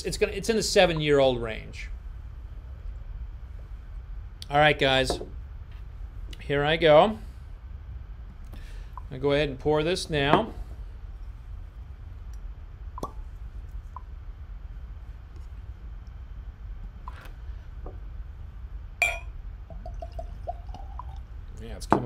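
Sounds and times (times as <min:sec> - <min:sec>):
cork pop: 0:13.0 - 0:13.2, 0:19.0 - 0:21.1
bottle clinking against glass: 0:19.0 - 0:19.3
liquid glugging into glass: 0:19.0 - 0:21.3.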